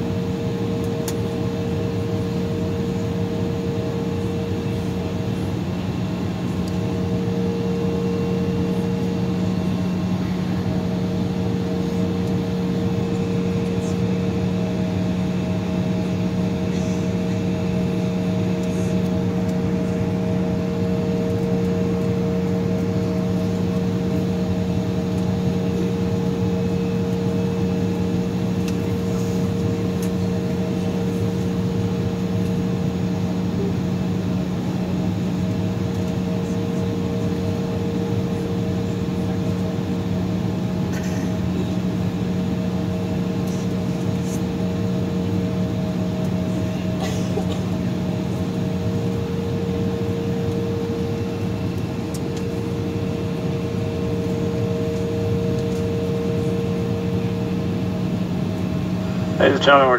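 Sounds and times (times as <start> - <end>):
airliner cabin engine hum: 0.0 - 59.9.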